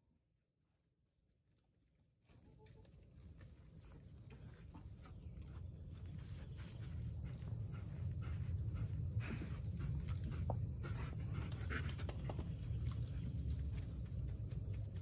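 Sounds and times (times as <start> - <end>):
constant high-pitched whine: 0.0 - 15.0.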